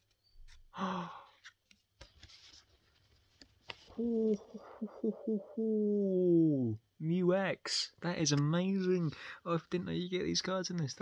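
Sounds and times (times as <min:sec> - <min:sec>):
breathy vocal sound: 0:00.7 - 0:01.4, 0:03.9 - 0:06.7
person gasping: 0:00.7 - 0:01.5, 0:03.9 - 0:06.4, 0:09.1 - 0:09.5.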